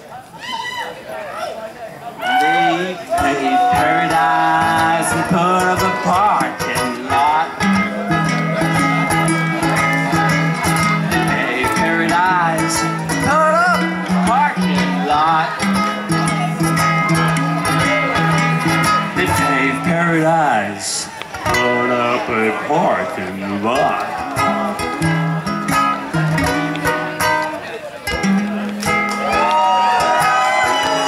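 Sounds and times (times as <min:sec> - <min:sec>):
ukuleles playing: 0:02.4 - 0:31.0.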